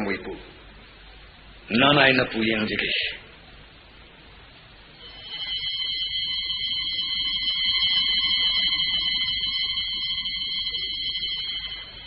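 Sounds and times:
high-pitched ringing tone: 4.8 - 12.0.

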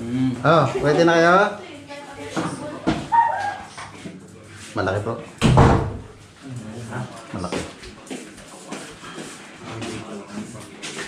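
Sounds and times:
small dog whining: 3.1 - 3.7.

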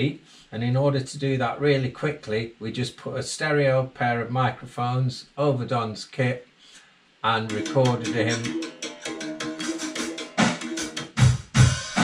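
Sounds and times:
cymbals: 7.5 - 12.0.

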